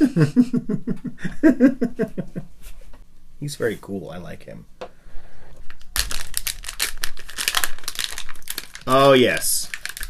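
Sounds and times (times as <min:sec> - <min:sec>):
foil bag crinkling: 0:05.6 - 0:10.0.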